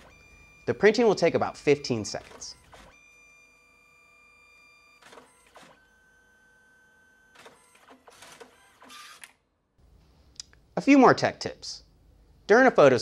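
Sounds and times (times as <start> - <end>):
print feeding whirs: 0.0 - 9.2
printer whine: 0.0 - 9.2
printer mechanical clicks: 1.9 - 2.9.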